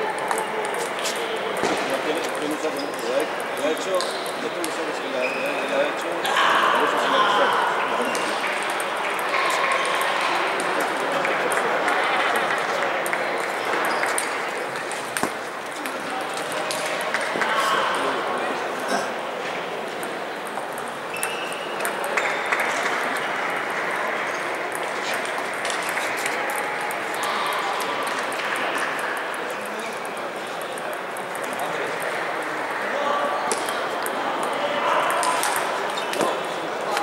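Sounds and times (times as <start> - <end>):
murmur of many voices: 0.0 - 37.0
sports hall din: 0.0 - 37.0
table tennis balls ticking: 0.1 - 6.0, 7.4 - 18.3, 19.6 - 37.0.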